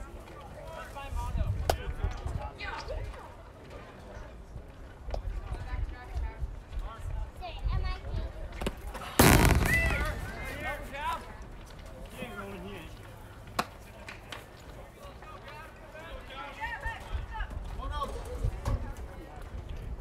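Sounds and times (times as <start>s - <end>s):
bat cracking baseball: 9.0s - 11.4s.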